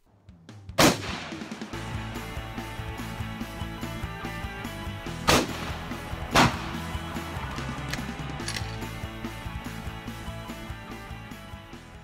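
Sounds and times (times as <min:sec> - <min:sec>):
background music: 0:00.1 - 0:12.0
rifle shots: 0:00.8 - 0:01.8, 0:05.2 - 0:06.8.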